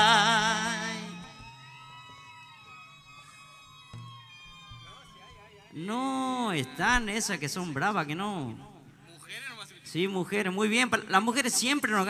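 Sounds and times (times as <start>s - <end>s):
distant crowd wailing shouts: 0.1s - 6.8s.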